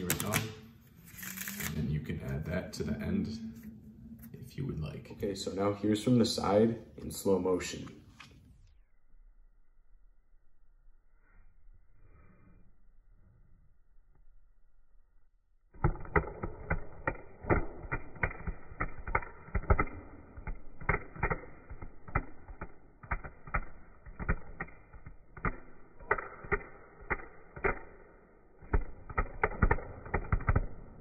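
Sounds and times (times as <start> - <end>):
playing cards riffle shuffle clicks: 0.0 - 0.6.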